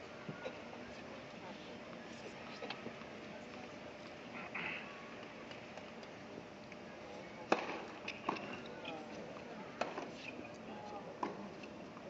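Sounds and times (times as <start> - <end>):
low crowd chatter: 0.0 - 12.0
tennis ball struck by rackets: 7.5 - 8.6.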